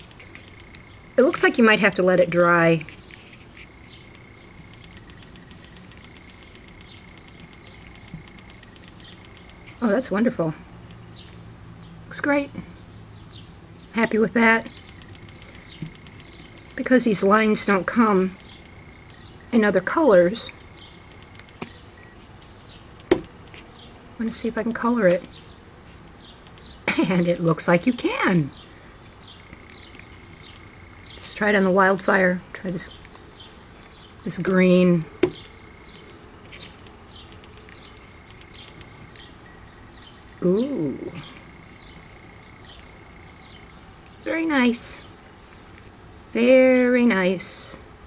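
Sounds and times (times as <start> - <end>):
high bird chirps: 2.9 - 10.0, 13.2 - 19.6.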